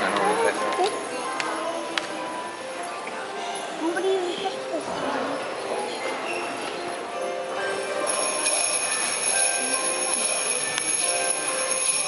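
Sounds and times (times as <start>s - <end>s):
small bells jingling: 7.2s - 12.0s.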